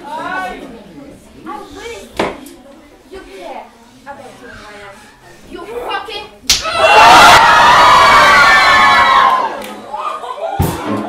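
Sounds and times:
sharp slap: 0:06.5 - 0:06.8.

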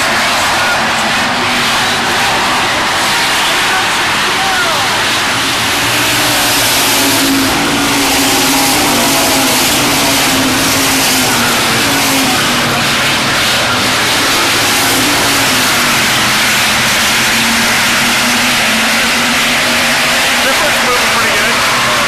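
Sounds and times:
race car engines passing: 0:00.0 - 0:22.0.

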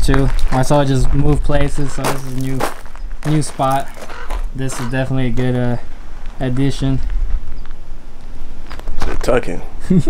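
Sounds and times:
wind buffeting microphone: 0:00.0 - 0:09.7.

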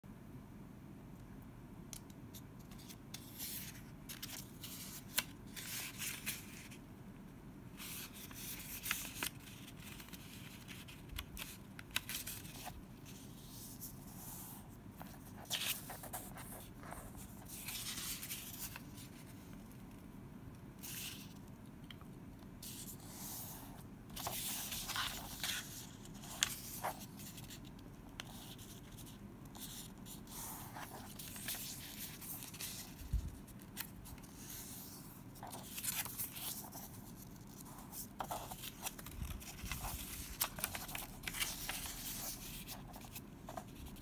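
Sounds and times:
paper rustling and crackling: 0:02.7 - 0:06.8, 0:07.8 - 0:13.9, 0:22.6 - 0:44.0.

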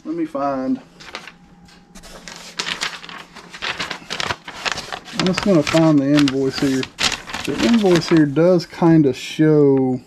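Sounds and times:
paper packing rustling: 0:01.0 - 0:08.8.

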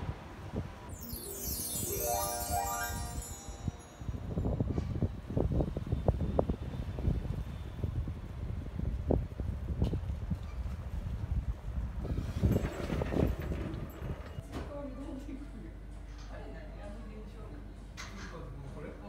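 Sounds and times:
chime tone: 0:00.9 - 0:05.1
wind rumbling on microphone: 0:04.2 - 0:14.4.

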